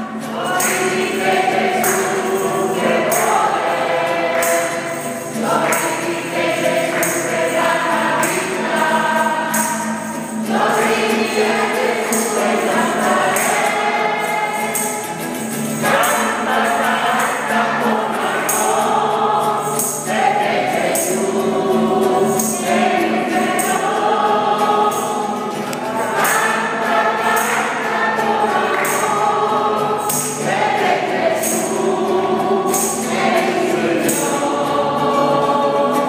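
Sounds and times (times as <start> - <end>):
acoustic guitar: 0.0 - 36.0
congregation singing: 0.0 - 36.0.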